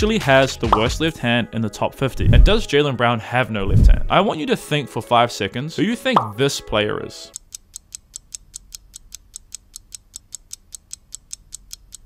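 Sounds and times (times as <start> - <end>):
clock ticking: 7.3 - 12.0.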